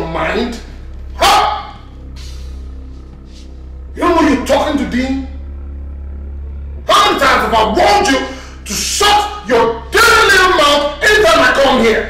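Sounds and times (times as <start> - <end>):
film music low notes: 0.0 - 12.0.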